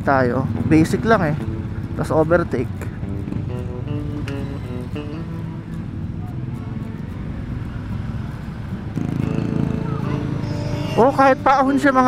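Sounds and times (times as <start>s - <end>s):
road noise: 0.0s - 12.0s
scooter engine running: 0.2s - 12.0s
background music: 8.9s - 12.0s.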